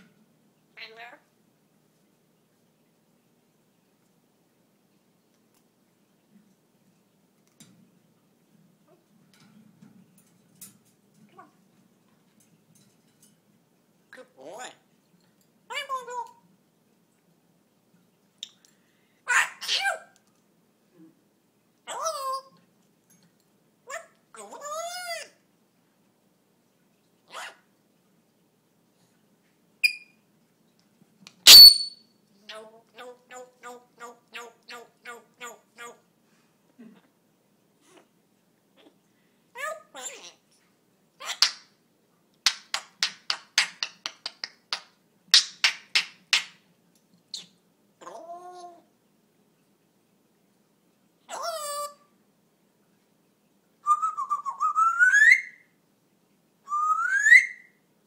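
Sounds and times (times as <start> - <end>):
parrot call: 31.4 - 32.0, 51.3 - 52.1, 53.8 - 55.6, 56.7 - 57.7
parrot clicking: 42.4 - 46.6.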